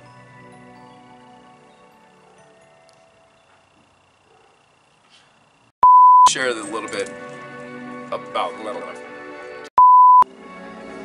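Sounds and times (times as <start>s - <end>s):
censor bleep tone: 5.8s - 6.3s, 9.8s - 10.2s
background music: 6.3s - 11.0s.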